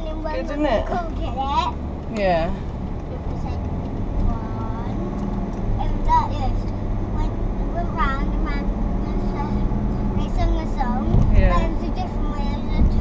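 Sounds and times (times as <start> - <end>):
car engine and tyres drone: 0.0 - 13.0.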